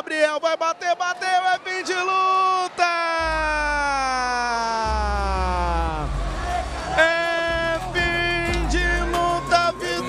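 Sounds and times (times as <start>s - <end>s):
man's long held shout: 3.2s - 6.1s
low bass thump of music: 8.0s - 9.3s.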